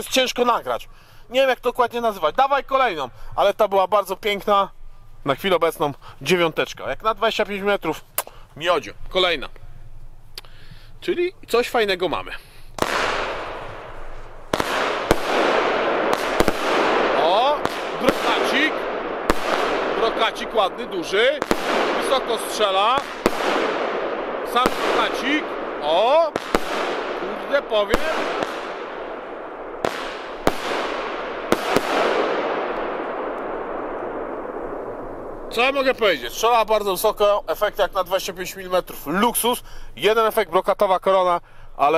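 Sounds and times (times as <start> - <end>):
firework crackling hiss: 12.6 - 36.8
firework bangs: 12.8 - 37.2.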